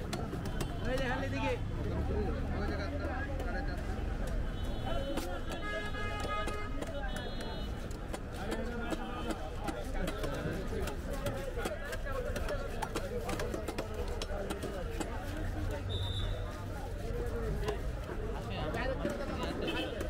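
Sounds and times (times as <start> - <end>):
cleavers chopping on wooden blocks: 0.0 - 16.0
crowd chatter: 0.0 - 20.0.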